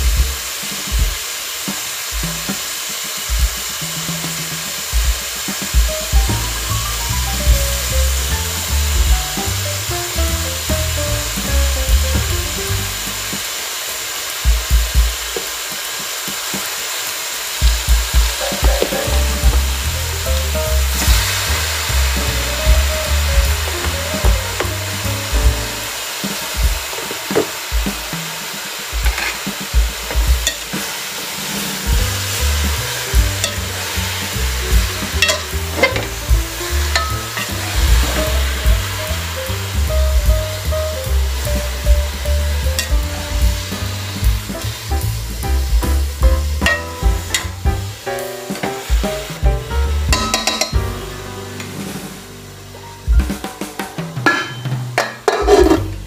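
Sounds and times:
background music with bass beat: 0:00.0 - 0:01.2, 0:04.9 - 0:13.4, 0:17.6 - 0:26.0, 0:31.8 - 0:56.0
mushrooms sizzling in pot: 0:00.0 - 0:53.3, 0:54.2 - 0:56.0.

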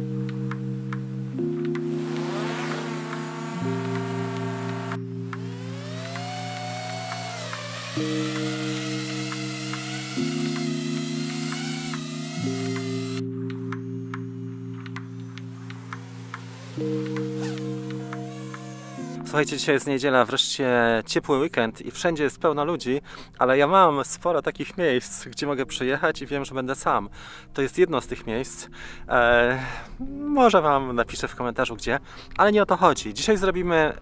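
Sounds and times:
slow sustained music chords: 0:00.0 - 0:32.1
drone motors whining: 0:02.0 - 0:13.3, 0:15.6 - 0:19.2.

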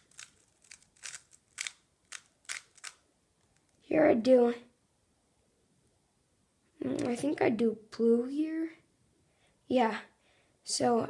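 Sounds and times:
plastic puzzle cube clicking: 0:00.0 - 0:03.8.

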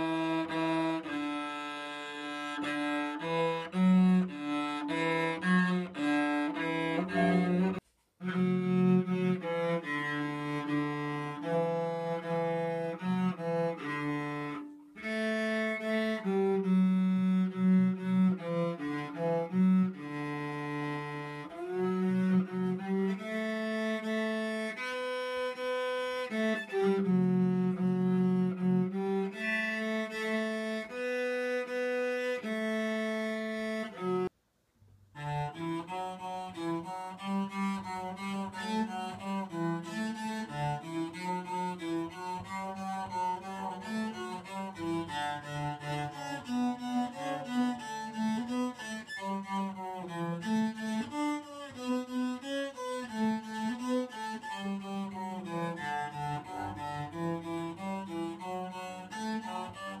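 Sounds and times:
bowed cello notes: 0:00.0 - 0:34.3, 0:35.1 - 1:00.0.

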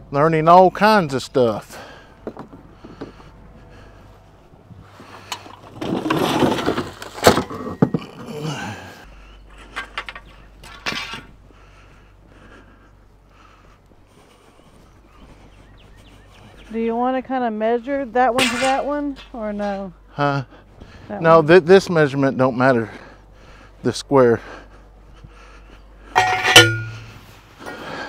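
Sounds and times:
metal posts clanking: 0:09.5 - 0:11.4, 0:18.3 - 0:19.9, 0:26.0 - 0:28.0
sharp metal knocks: 0:26.2 - 0:27.2.

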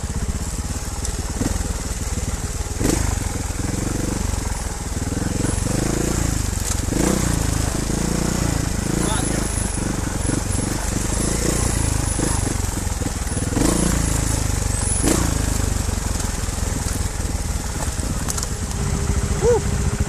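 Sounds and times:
motorcycle engine at low revs: 0:00.0 - 0:20.0
motorcycle rattling and knocking: 0:00.0 - 0:20.0.

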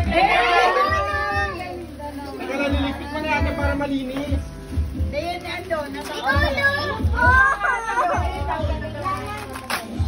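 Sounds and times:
children shouting: 0:00.0 - 0:01.7, 0:06.3 - 0:08.4.

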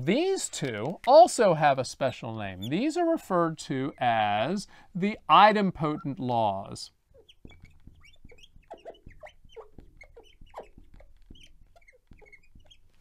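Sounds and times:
marker squeaking on glass: 0:01.9 - 0:13.0.

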